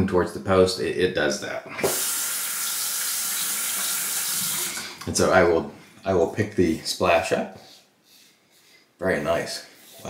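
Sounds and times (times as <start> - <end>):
tap water running: 1.8 - 5.1.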